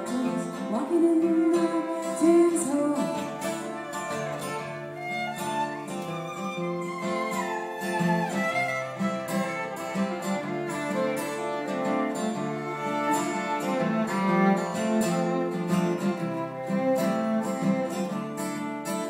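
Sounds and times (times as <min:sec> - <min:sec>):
fiddle bowing a melody: 0:00.0 - 0:19.0
strummed acoustic guitar: 0:00.0 - 0:19.0.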